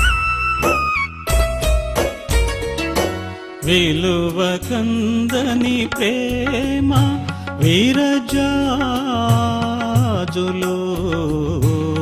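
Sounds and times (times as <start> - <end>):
instrumental backing: 0.0 - 12.0.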